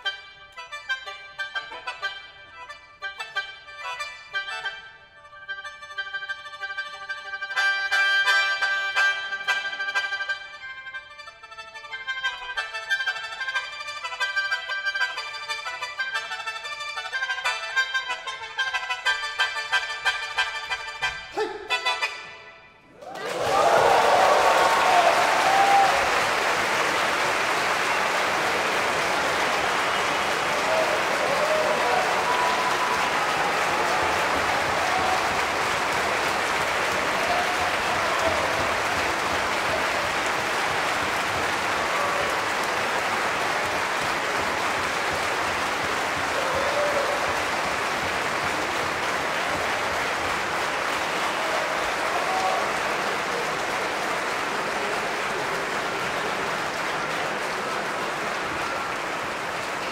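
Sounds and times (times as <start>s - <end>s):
audience applauding: 22.9s - 59.9s.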